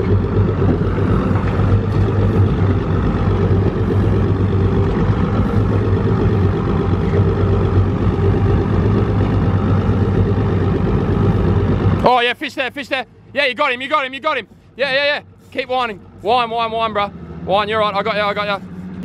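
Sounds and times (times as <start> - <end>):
boat outboard motor idling: 0.0 - 19.0.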